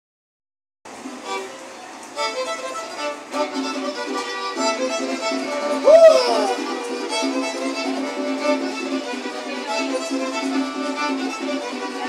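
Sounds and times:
strummed small guitar: 1.0 - 12.0
violin melody: 1.2 - 12.0.

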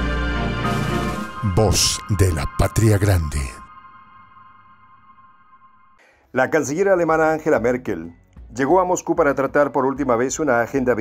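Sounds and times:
ringing electronic tone: 1.2 - 6.1.

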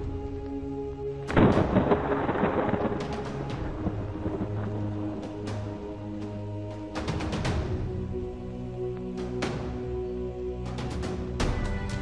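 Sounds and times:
dark background music: 0.0 - 12.0.

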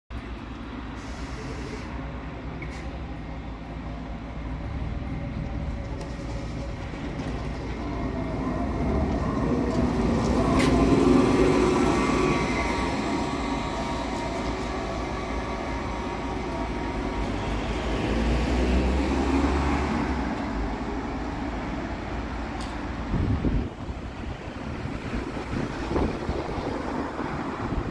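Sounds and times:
trolleybus driving past: 0.2 - 27.9.

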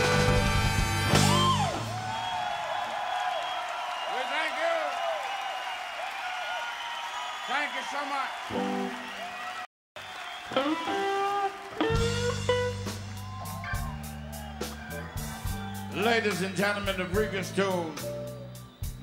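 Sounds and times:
blues band playing: 0.0 - 2.1, 8.5 - 9.2, 10.2 - 19.0.

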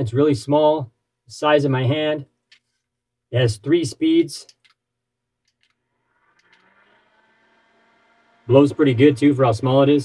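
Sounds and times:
small desk fan whirring: 5.6 - 9.7.

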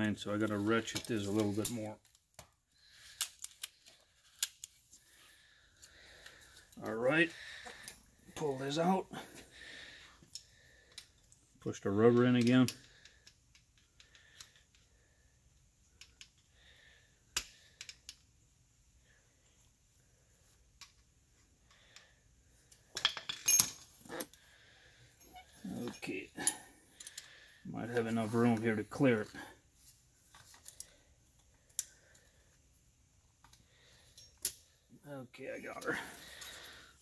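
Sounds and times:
metallic clicks and clinks: 22.7 - 24.4, 25.2 - 27.3, 33.4 - 34.8.

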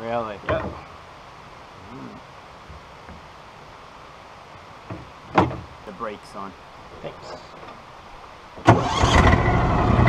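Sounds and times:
knocks from vehicle body: 4.9 - 5.7
atv running over rough trail: 8.6 - 10.0.

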